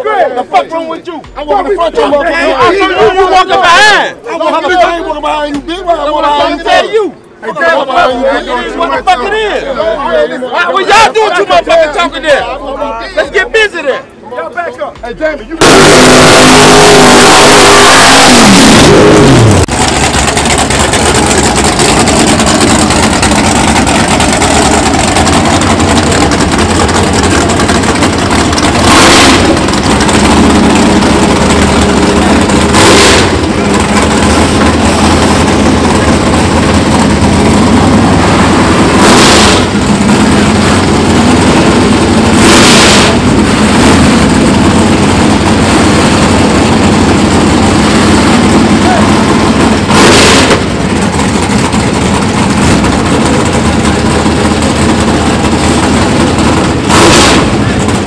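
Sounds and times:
car engine idling loud: 0:15.2 - 0:58.0
short rushing bursts: 0:15.6 - 0:58.0.

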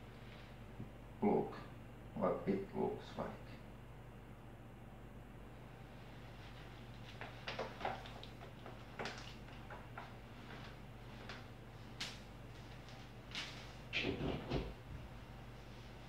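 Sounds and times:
footsteps in socks: 0:06.3 - 0:13.8.

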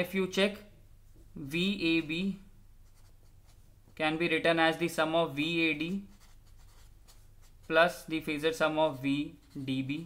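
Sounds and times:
marker scratching on paper: 0:02.8 - 0:03.7, 0:05.8 - 0:08.4, 0:09.2 - 0:10.0.

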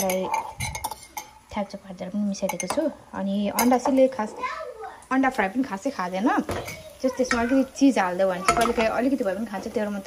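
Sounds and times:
frying pan and utensil knocking: 0:03.5 - 0:04.2, 0:06.3 - 0:09.8.

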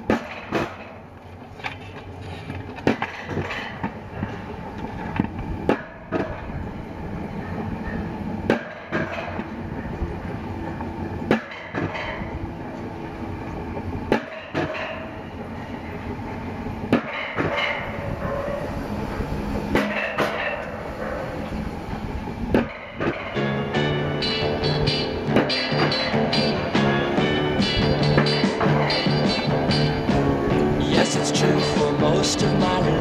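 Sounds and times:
sled rolling on steel rails: 0:00.0 - 0:33.0
wheels clacking on rail joints: 0:00.0 - 0:33.0.

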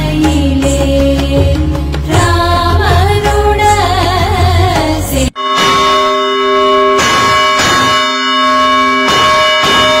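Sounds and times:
large metal bell ringing: 0:05.3 - 0:10.0.

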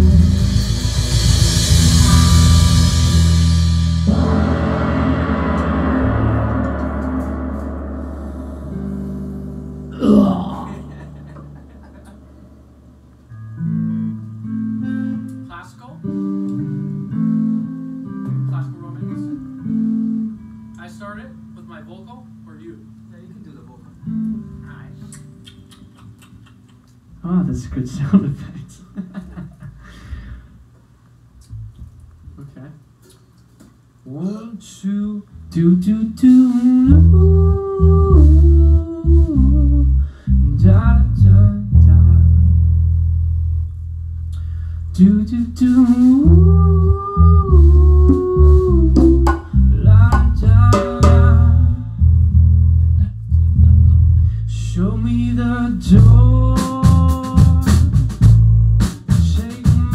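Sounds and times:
drum kit: 0:00.0 - 0:13.7, 0:45.6 - 0:51.8, 0:55.9 - 0:59.9
electric guitar ringing: 0:00.0 - 0:18.0
bass guitar: 0:00.0 - 0:23.1, 0:31.4 - 0:32.5, 0:35.3 - 0:59.9
man singing long notes: 0:09.9 - 0:11.1, 0:35.1 - 0:42.5, 0:45.0 - 0:52.1, 0:54.5 - 0:57.9.

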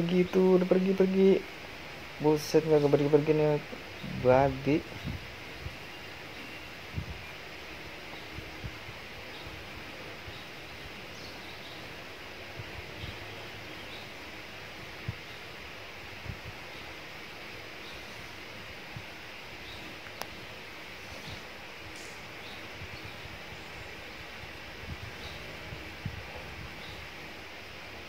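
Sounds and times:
steady hiss: 0:00.0 - 0:28.0
faint bird chirps: 0:03.9 - 0:07.4, 0:19.3 - 0:24.3
soft low thumps: 0:04.9 - 0:05.8.

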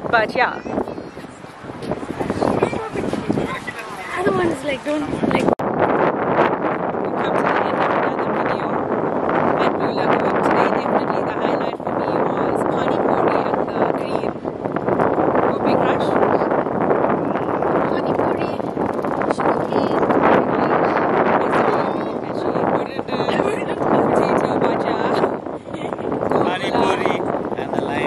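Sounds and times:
wind buffeting microphone: 0:00.0 - 0:28.0.

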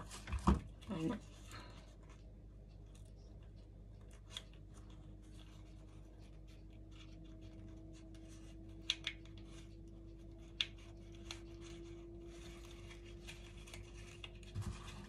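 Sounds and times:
paper rustling: 0:04.0 - 0:15.0.

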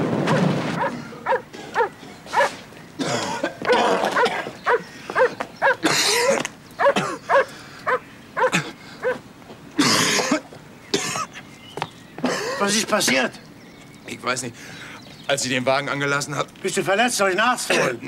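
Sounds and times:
man coughing and gasping: 0:03.0 - 0:04.6, 0:05.8 - 0:07.5, 0:08.4 - 0:08.8, 0:09.8 - 0:11.4, 0:12.2 - 0:13.3, 0:17.6 - 0:18.0.

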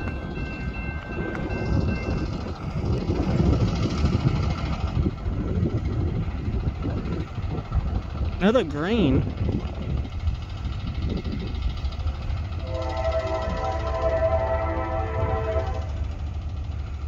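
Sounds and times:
diesel locomotives rumbling: 0:00.0 - 0:17.0.

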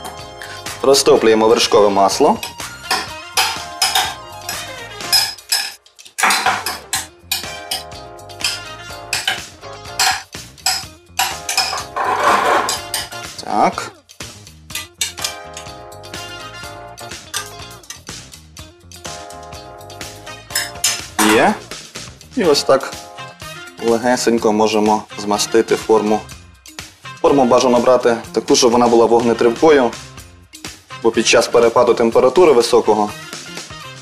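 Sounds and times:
background music: 0:00.0 - 0:34.0
metal spoon scraping saucepan: 0:02.4 - 0:07.8, 0:08.4 - 0:13.2, 0:14.8 - 0:15.4, 0:20.5 - 0:21.5.

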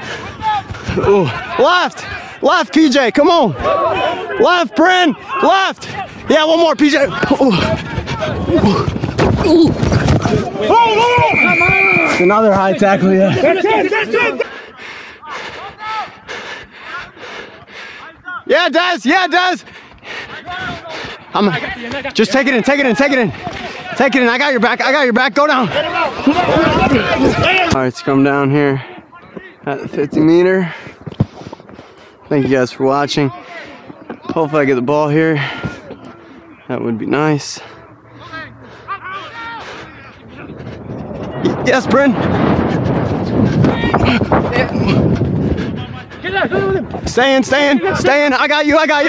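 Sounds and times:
hard rhythmic breathing: 0:00.0 - 0:02.4, 0:13.2 - 0:18.5, 0:19.5 - 0:21.7, 0:28.6 - 0:34.2, 0:37.4 - 0:41.6, 0:42.2 - 0:47.1
distant players shouting: 0:00.0 - 0:30.8, 0:32.2 - 0:49.0
wind buffeting microphone: 0:07.0 - 0:13.4, 0:25.6 - 0:27.8, 0:39.7 - 0:49.0.

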